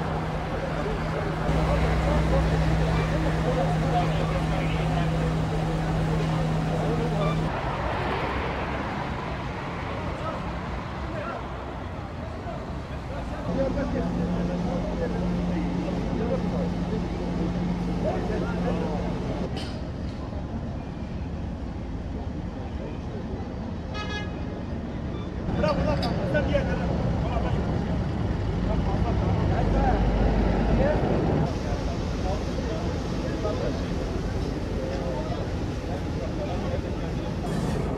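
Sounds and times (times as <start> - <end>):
people talking: 0.0 - 7.5, 11.1 - 19.5, 25.5 - 27.9, 30.7 - 37.9
fire engine hum: 0.0 - 19.6, 26.7 - 37.9.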